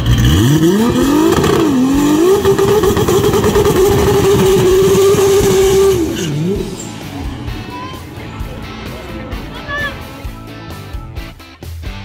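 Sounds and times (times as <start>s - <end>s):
drag car engine revving: 0.0s - 11.3s.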